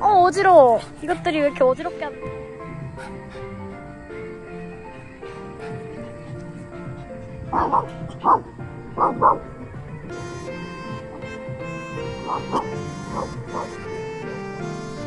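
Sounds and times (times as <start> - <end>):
background music: 0.0 - 15.0
dog barking: 7.5 - 9.4, 12.2 - 13.8.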